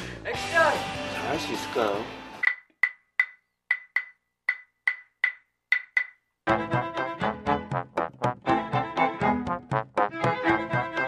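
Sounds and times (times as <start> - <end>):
dry percussion knocks: 2.4 - 6.2.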